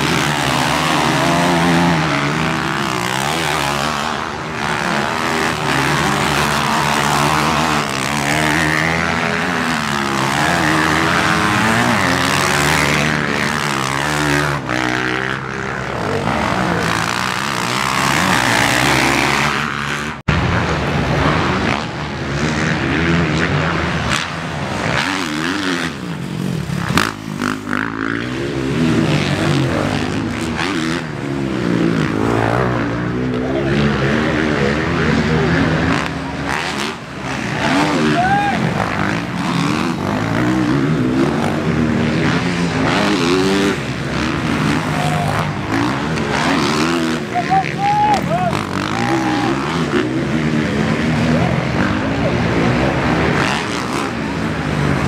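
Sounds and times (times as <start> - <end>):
motocross bike engines revving: 0.0 - 55.0.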